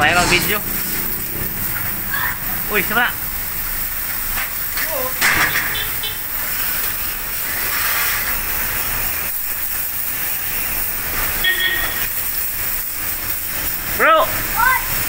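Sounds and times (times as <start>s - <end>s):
water jet hissing: 0.0s - 15.0s.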